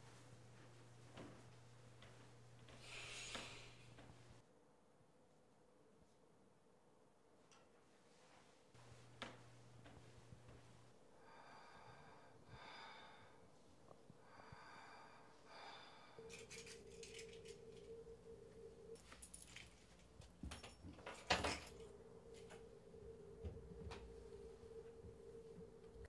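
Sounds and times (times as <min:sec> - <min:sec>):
wheezy breathing: 0:02.7 - 0:04.0, 0:11.1 - 0:17.9
low hum: 0:08.8 - 0:26.0
objects being handled: 0:16.2 - 0:22.7.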